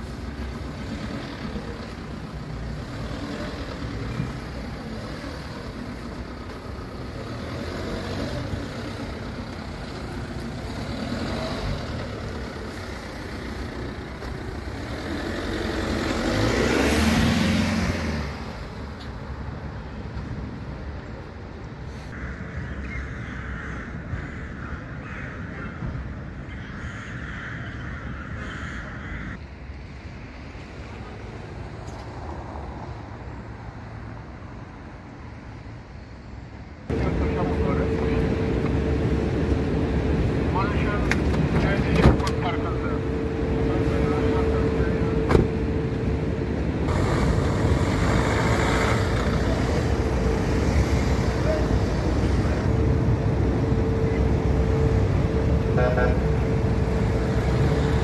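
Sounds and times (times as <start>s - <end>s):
van engine running: 0.0s - 18.8s, 36.9s - 58.0s
street noise: 0.0s - 58.0s
crows cawing: 22.1s - 29.4s
voices: 36.9s - 39.7s, 40.3s - 45.7s
car door shutting: 45.3s - 45.5s.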